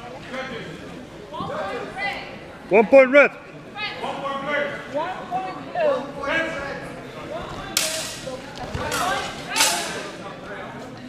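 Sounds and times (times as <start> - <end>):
steel swords clashing: 7.8 - 10.1.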